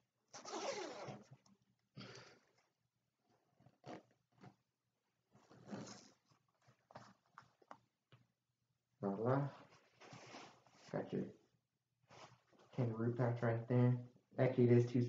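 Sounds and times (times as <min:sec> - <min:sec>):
zipper being drawn up: 0:00.3 - 0:01.3, 0:05.5 - 0:06.2
zipper clicks: 0:00.3 - 0:01.3, 0:05.5 - 0:06.2.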